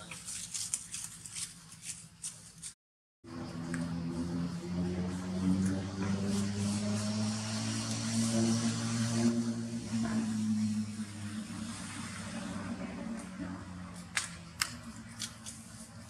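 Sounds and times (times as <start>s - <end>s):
low hum: 3.3s - 16.0s.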